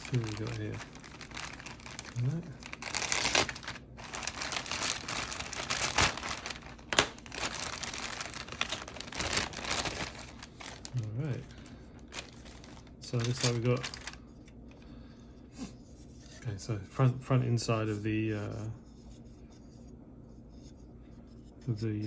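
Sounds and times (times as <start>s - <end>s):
plastic bag crinkling: 0.0s - 14.3s.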